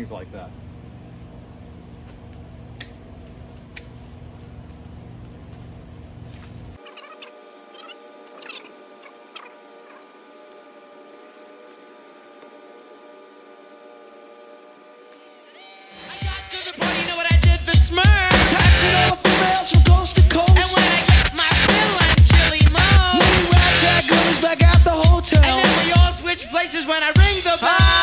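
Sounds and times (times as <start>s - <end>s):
faint steady tones: 7.2s - 16.6s
pruners snipping branches: 8.1s - 13.2s.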